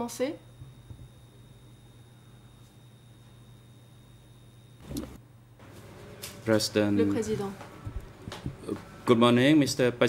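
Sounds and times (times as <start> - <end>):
faint high whine: 0.0 - 5.6
low electrical hum: 0.0 - 10.0.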